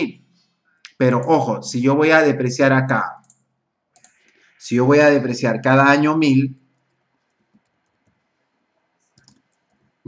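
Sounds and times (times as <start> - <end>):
computer keyboard clicks: 4.0 - 4.3, 9.1 - 9.8.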